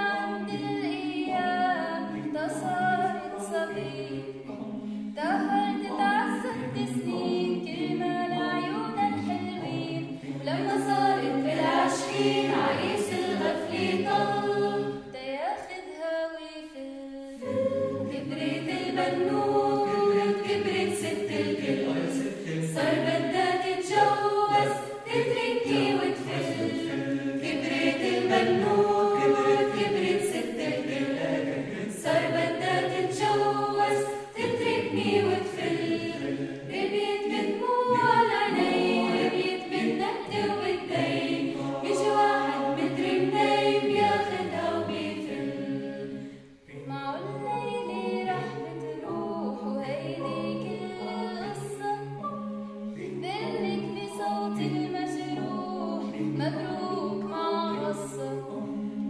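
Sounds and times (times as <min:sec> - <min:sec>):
choir singing a cappella: 0:00.0 - 0:59.0.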